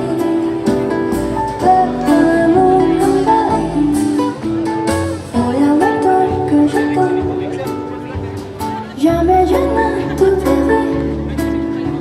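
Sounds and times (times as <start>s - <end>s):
live band playing slow song: 0.0s - 12.0s.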